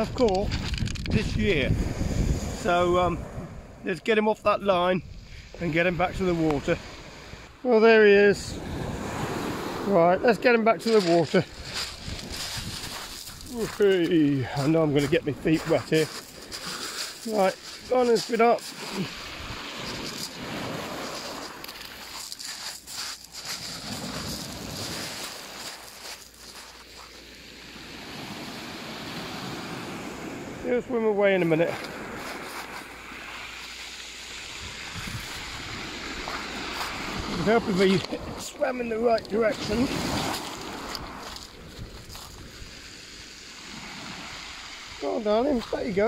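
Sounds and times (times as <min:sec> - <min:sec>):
waves washing over shingle: 0:00.0 - 0:46.0.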